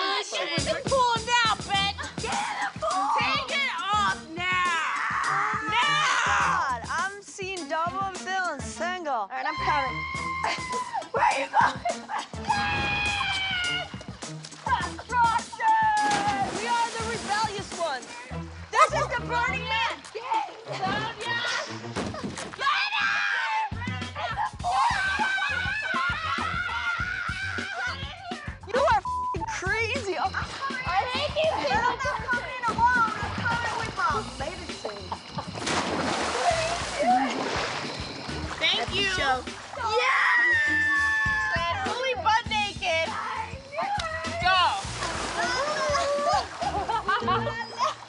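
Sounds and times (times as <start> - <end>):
women calling out excitedly: 0.0 - 7.2, 9.3 - 11.8, 14.6 - 17.6, 22.6 - 34.4, 38.9 - 46.6
background music: 0.0 - 48.0
woman squealing: 9.4 - 14.0, 22.7 - 29.1, 36.4 - 37.5, 39.8 - 42.0, 45.4 - 48.0.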